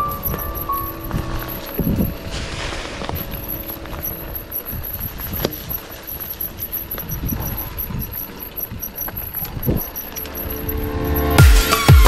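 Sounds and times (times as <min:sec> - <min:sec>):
wind buffeting microphone: 0:00.0 - 0:10.0
bike tyres rumbling on dirt: 0:00.0 - 0:10.2.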